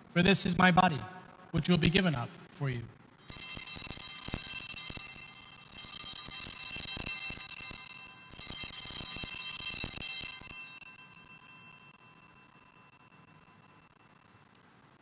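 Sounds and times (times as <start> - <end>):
hand bells jingling: 3.2 - 14.2.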